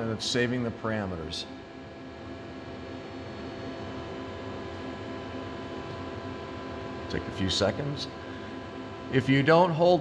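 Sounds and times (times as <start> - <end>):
machinery hum and hiss: 0.0 - 10.0.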